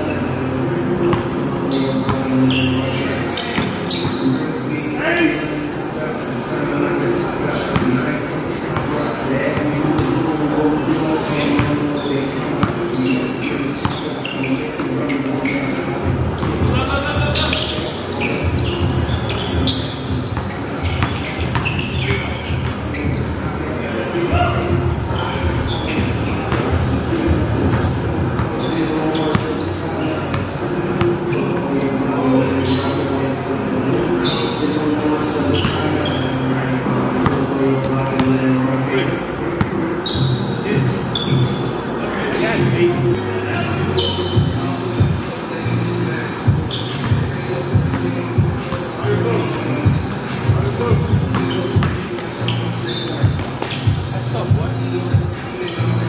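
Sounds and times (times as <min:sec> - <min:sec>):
sneaker squeak: 0:00.0 - 0:04.5, 0:07.6 - 0:08.1, 0:08.7 - 0:38.5, 0:39.5 - 0:41.8, 0:42.4 - 0:56.0
basketball bouncing on court: 0:18.2 - 0:23.2, 0:25.5 - 0:28.6, 0:50.9 - 0:52.1.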